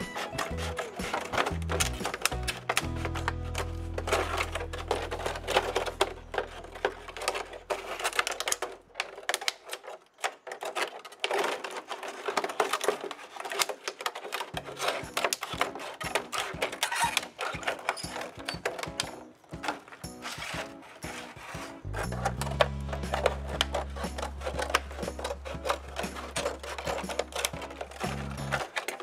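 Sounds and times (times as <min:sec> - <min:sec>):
scissors cutting plastic: 0:00.0 - 0:29.0.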